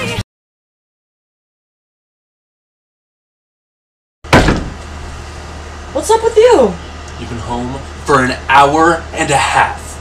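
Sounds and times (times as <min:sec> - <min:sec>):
sudden loud thump: 0:04.3 - 0:04.9.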